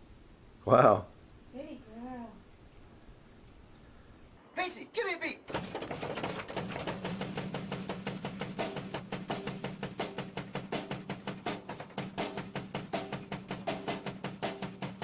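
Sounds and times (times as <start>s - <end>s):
fast drum beat: 5.4s - 15.0s.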